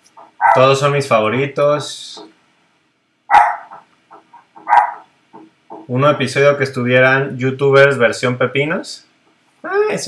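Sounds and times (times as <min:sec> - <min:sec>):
dog barking: 0:00.4 - 0:00.8, 0:03.3 - 0:05.1.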